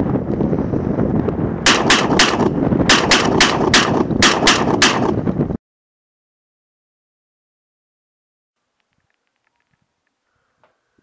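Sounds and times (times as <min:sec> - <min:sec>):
loud steady rumbling: 0:00.1 - 0:05.6
shotgun fired rapidly: 0:01.7 - 0:05.3.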